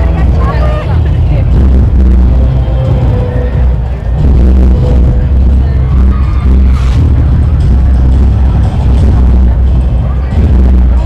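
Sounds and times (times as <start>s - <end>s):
loud bass-heavy amplified music: 0.0s - 11.0s
voices: 0.0s - 11.0s.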